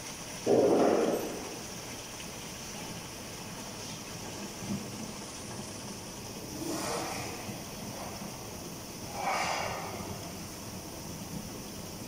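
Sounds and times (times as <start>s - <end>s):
liquid running into jerrycans: 0.0s - 12.0s.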